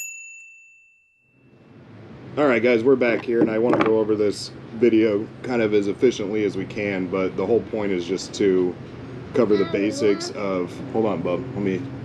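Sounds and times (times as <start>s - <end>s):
notification bell ding: 0.0s - 1.5s.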